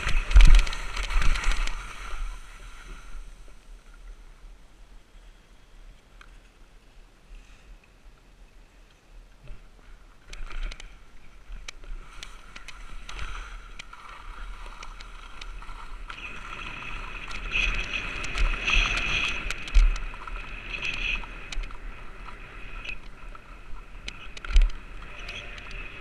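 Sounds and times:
small clicks: 0.0s - 2.2s, 10.2s - 26.0s
skis scraping over snow: 0.0s - 4.2s, 9.8s - 26.0s
wind rumbling on microphone: 0.0s - 7.3s, 8.0s - 26.0s.

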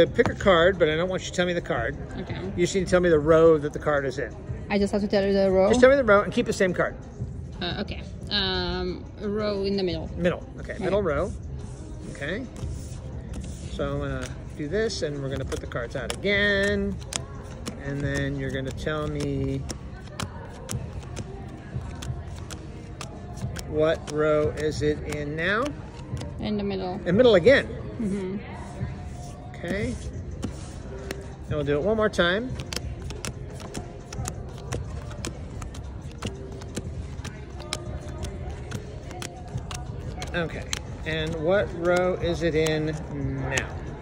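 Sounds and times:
background hubbub: 0.0s - 44.0s
background music: 0.0s - 44.0s
cards tapping onto a table: 0.1s - 0.6s, 12.5s - 26.4s, 29.7s - 44.0s.

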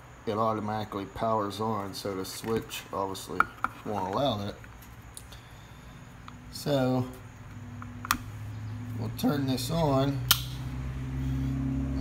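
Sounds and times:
steady low hum: 0.0s - 12.0s
switch cover click: 10.3s - 10.6s.

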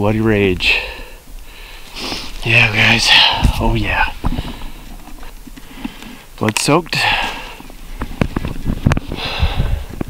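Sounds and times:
breath through the nose: 0.8s - 2.4s, 9.1s - 10.0s.

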